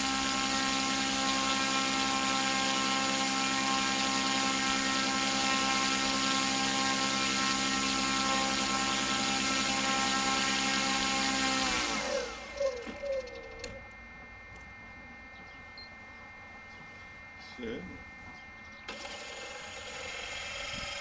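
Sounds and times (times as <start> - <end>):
electric motor whine: 0.0 - 21.0.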